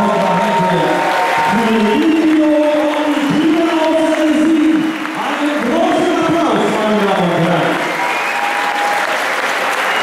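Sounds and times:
noisy arena crowd: 0:00.0 - 0:10.0.

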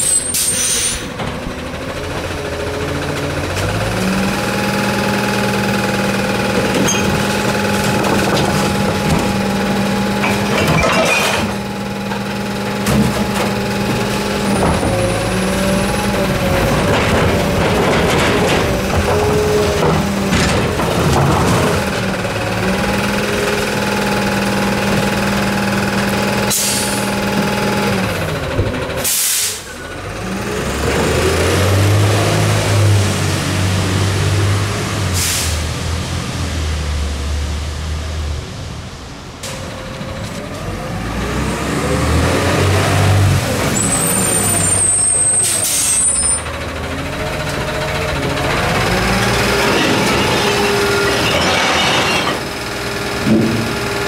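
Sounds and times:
garbage truck engine running: 0:00.0 - 0:54.0
air brake release: 0:00.1 - 0:01.1, 0:26.5 - 0:27.1, 0:29.0 - 0:29.8, 0:35.2 - 0:35.6, 0:45.3 - 0:46.2
recycling clattering into hopper: 0:06.5 - 0:25.6, 0:46.5 - 0:54.0.

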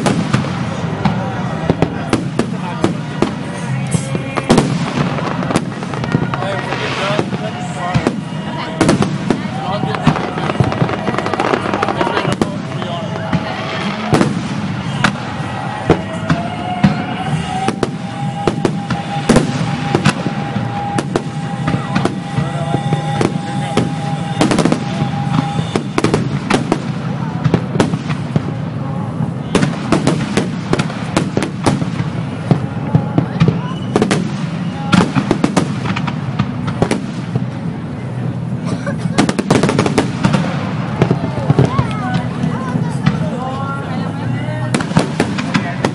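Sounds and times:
firework crackling: 0:00.0 - 0:45.9.

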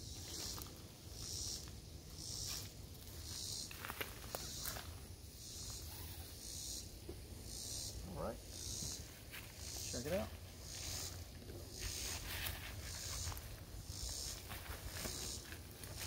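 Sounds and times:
insect hissing buzz call: 0:00.0 - 0:16.0.

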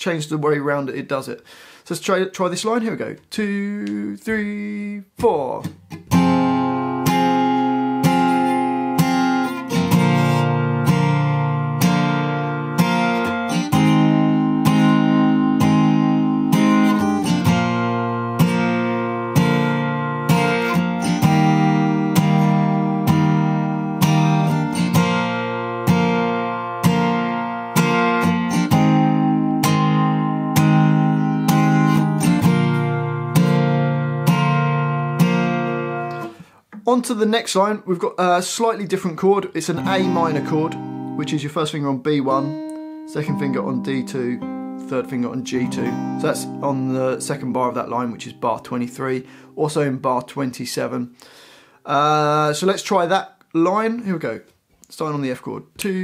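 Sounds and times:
acoustic guitar strumming: 0:03.8 - 0:36.8, 0:39.6 - 0:50.6.

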